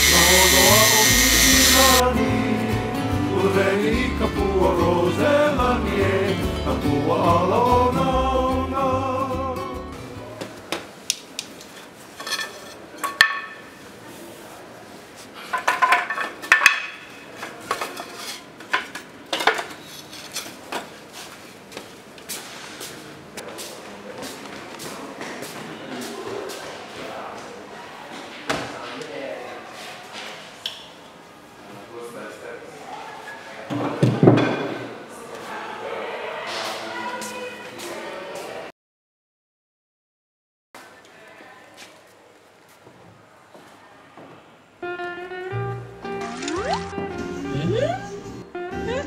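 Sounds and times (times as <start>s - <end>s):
music with singing: 0.0s - 10.3s.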